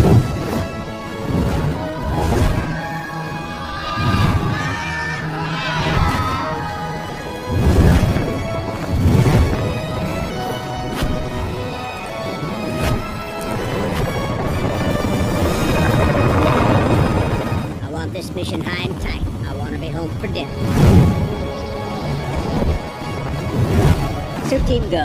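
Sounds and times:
orchestral music: 0:00.0 - 0:25.0
wavering high calls: 0:01.8 - 0:07.4.

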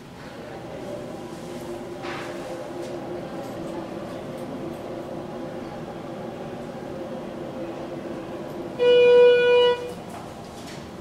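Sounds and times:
elevator arrival beep: 0:08.6 - 0:10.0.

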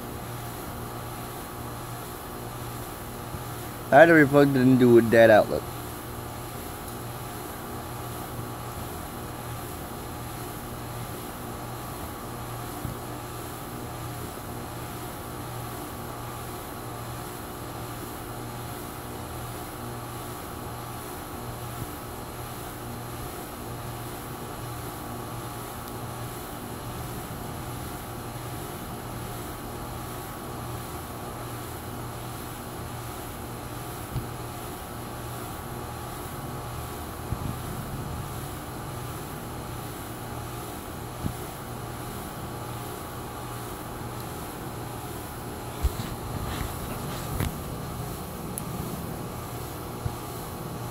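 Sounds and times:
ceiling fan whirring: 0:00.0 - 0:50.9.

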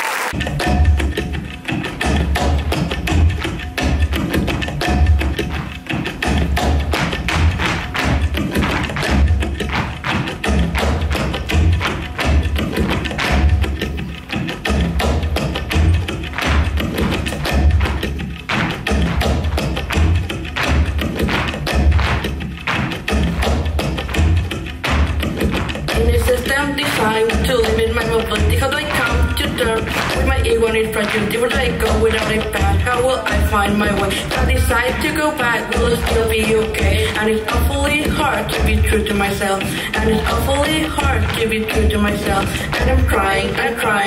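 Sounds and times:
flamenco music with deep beat: 0:00.3 - 0:44.0
dancers' shoes stamping on stage: 0:01.7 - 0:26.2.

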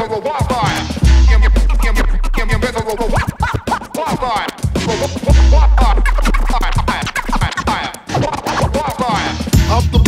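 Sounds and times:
drum beat: 0:00.0 - 0:10.0
turntable scratches: 0:00.0 - 0:10.0
deep bass note: 0:01.0 - 0:03.2, 0:05.2 - 0:07.5.

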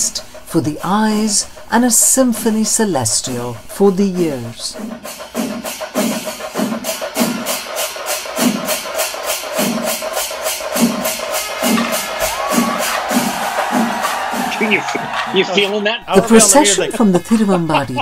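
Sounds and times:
metallic cymbal strikes: 0:00.0 - 0:14.8
deep drum strokes: 0:00.0 - 0:15.4.

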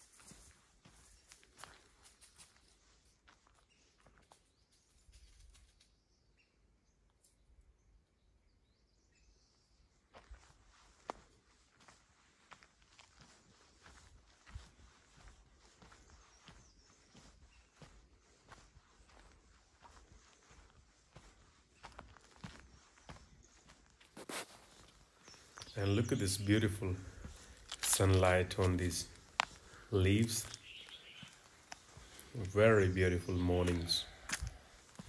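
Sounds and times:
footsteps on dry leaves: 0:00.0 - 0:04.4, 0:10.2 - 0:35.0.

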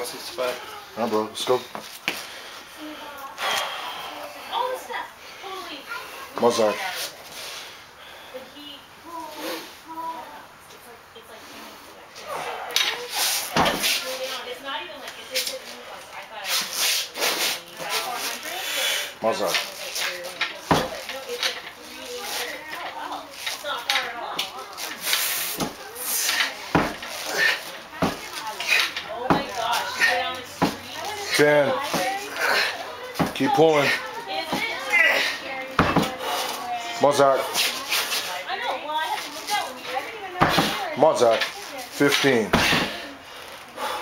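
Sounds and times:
forceful breaths and grunts: 0:02.1 - 0:06.3, 0:11.4 - 0:14.0, 0:24.9 - 0:38.2, 0:42.2 - 0:44.0.

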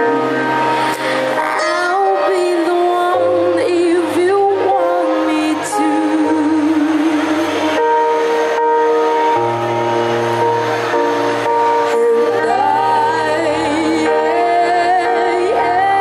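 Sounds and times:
instrumental backing chords: 0:00.0 - 0:16.0
girl singing into microphone: 0:01.0 - 0:07.7, 0:11.8 - 0:16.0.

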